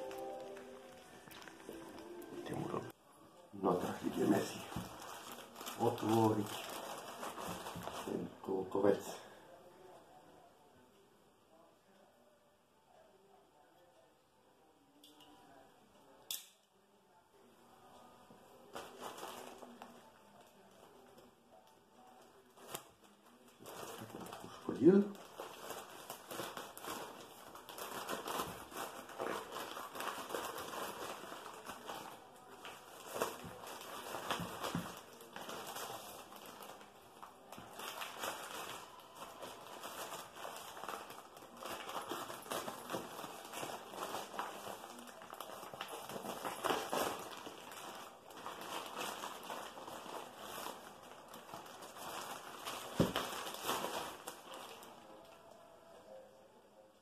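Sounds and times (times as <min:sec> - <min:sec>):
plastic bag crinkling: 0:00.0 - 0:02.9, 0:03.6 - 0:09.3, 0:18.6 - 0:55.5
plastic bag ripping: 0:03.6 - 0:09.0, 0:18.6 - 0:21.0, 0:22.1 - 0:55.5.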